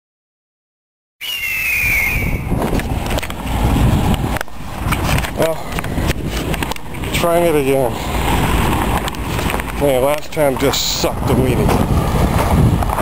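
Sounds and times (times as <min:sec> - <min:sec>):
short falling high tone: 0:01.2 - 0:02.6
camera handling rumble and knocks: 0:02.6 - 0:03.5, 0:04.1 - 0:07.2, 0:08.6 - 0:10.7.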